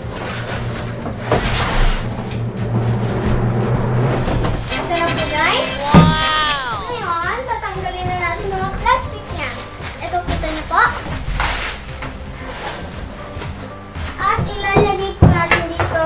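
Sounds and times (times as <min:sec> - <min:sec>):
girl squealing: 0:04.9 - 0:07.3.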